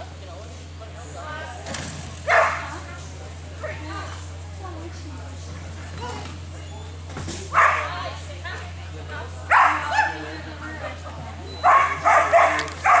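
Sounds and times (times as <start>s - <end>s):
steady low hum: 0.0s - 13.0s
dog barking: 2.3s - 2.8s, 7.5s - 8.0s, 9.5s - 10.3s, 11.6s - 13.0s.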